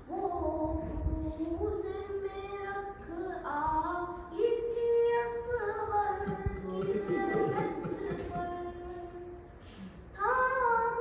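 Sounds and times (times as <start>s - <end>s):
child singing a lament: 0.1s - 9.5s, 10.1s - 11.0s.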